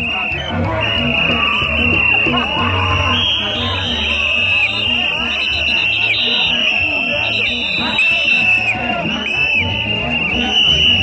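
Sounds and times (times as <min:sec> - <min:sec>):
band playing loud festival music: 0:00.0 - 0:11.0.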